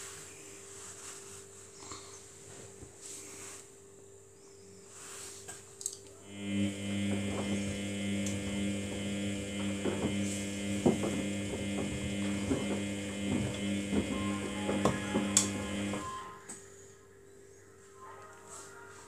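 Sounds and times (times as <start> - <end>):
washing machine motor hum: 6.2 - 16.2.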